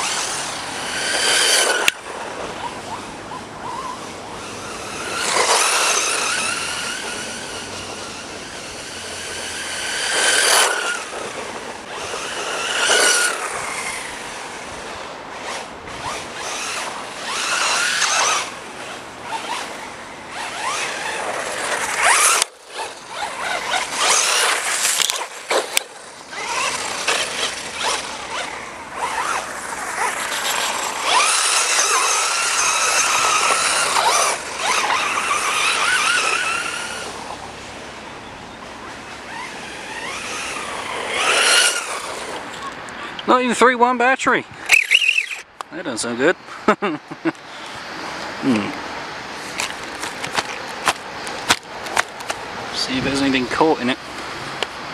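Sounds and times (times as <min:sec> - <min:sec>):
rc car motor whining: 0:00.0 - 0:43.4, 0:44.6 - 0:45.5.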